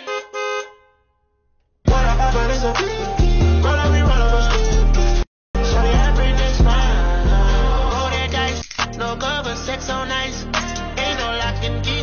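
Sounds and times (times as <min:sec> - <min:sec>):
car horn beeps: 0:00.0 - 0:01.4
hip-hop beat with heavy bass: 0:01.9 - 0:12.0.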